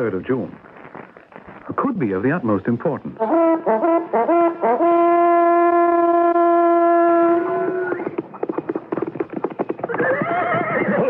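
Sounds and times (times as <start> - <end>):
horse hoofbeats clip-clopping: 7.0 - 11.0
horse whinnying: 9.8 - 11.0.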